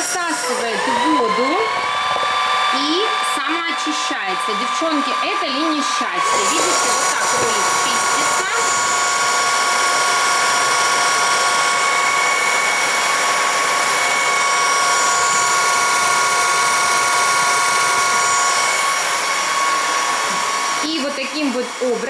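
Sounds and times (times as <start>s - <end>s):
floor vacuum whining: 0.0s - 22.0s.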